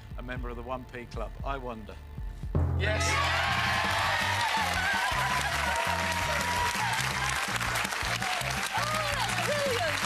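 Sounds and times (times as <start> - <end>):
people whooping: 2.8 - 10.0
audience applauding: 3.1 - 10.0.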